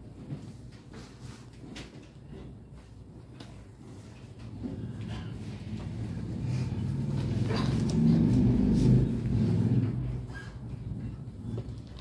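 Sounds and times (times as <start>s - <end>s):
low motor drone: 4.4s - 12.0s.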